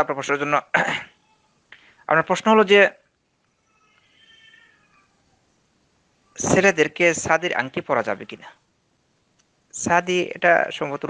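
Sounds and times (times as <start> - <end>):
high-pitched animal call: 3.6 - 5.2.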